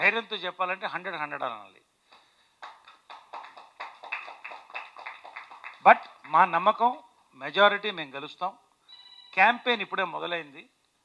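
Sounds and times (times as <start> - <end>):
people clapping: 2.1 - 6.5.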